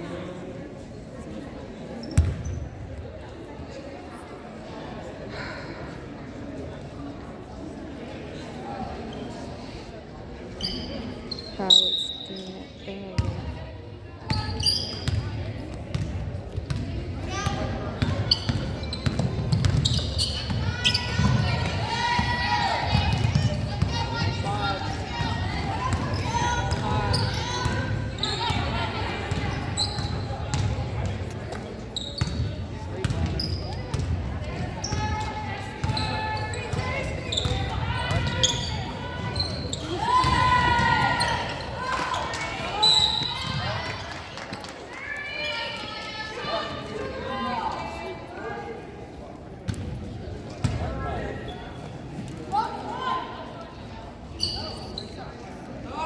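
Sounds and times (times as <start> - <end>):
sneakers squeaking: 2.0 - 2.8, 10.5 - 13.4, 14.2 - 22.3, 22.9 - 44.0, 54.3 - 55.4.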